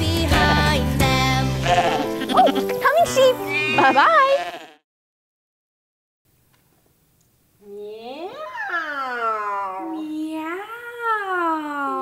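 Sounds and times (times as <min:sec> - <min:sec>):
children's song: 0:00.0 - 0:02.1
sheep bleating: 0:01.6 - 0:02.8, 0:03.6 - 0:04.8.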